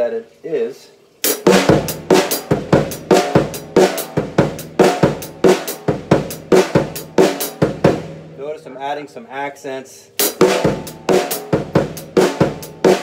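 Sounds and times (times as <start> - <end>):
drum kit funk groove: 1.2 - 8.5, 10.2 - 13.0.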